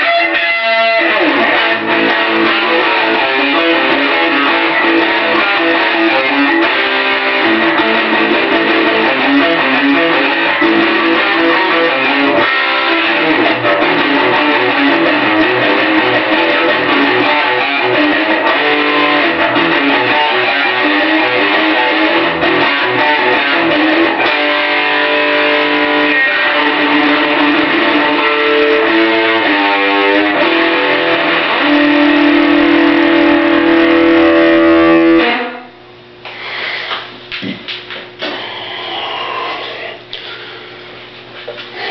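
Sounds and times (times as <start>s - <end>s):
electric guitar lead: 0.0s - 36.2s.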